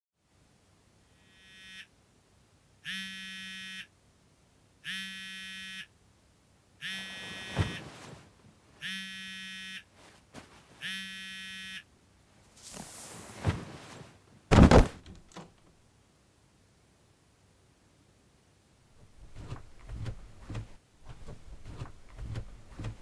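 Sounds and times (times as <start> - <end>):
phone alarm beeping: 4.9 - 5.9, 6.8 - 7.8, 8.8 - 9.8, 10.8 - 11.8
rustling: 7.0 - 8.6, 9.9 - 10.8, 12.4 - 15.8, 18.9 - 23.0
thump: 14.5 - 15.5.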